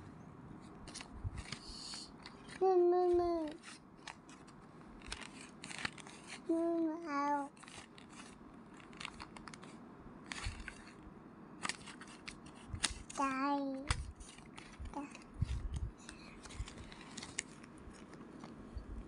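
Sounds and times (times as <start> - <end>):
toddler humming sounds: 2.6 - 3.6, 6.5 - 7.5
paper card scraping in card reader: 3.4 - 6.5, 7.5 - 11.0.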